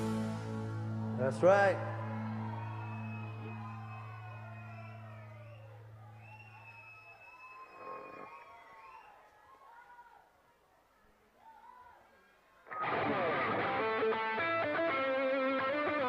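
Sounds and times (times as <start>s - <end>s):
live band holding low chord: 0.0s - 4.1s
faint crowd noise: 0.0s - 16.0s.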